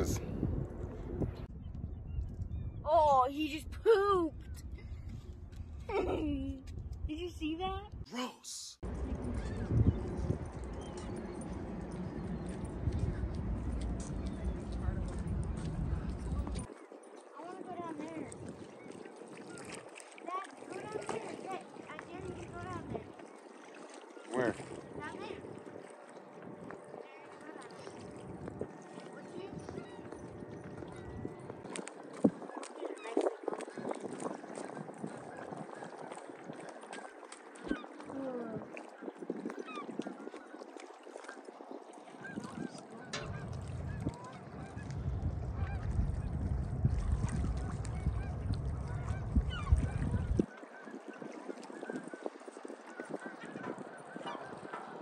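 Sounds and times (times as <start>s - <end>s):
wind rumble on microphone: 0.0s - 8.1s, 8.8s - 23.4s, 24.2s - 55.0s
birds calling: 42.1s - 46.4s.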